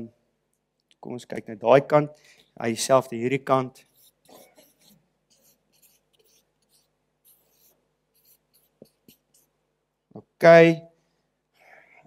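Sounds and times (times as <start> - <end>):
marker pen scratching on paper: 3.7 - 9.6.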